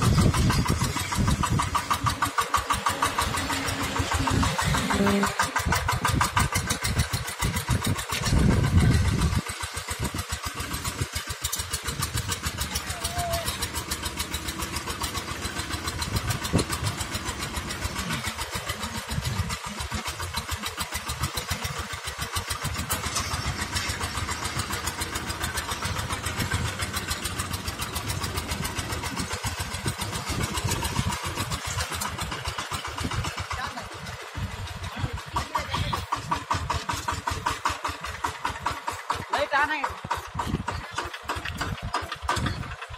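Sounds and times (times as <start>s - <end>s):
rake dragging through soil: 0.0s - 6.1s, 22.4s - 32.4s
diesel tiller engine chugging: 0.0s - 42.9s.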